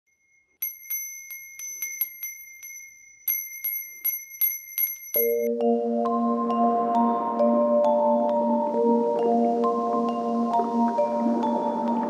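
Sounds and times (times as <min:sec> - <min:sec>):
small brass bell ringing: 0:00.1 - 0:05.5.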